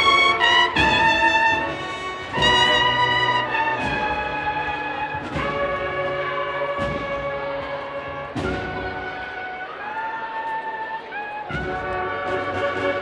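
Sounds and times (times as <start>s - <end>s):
drum strokes: 0.0s - 9.8s, 11.4s - 13.0s.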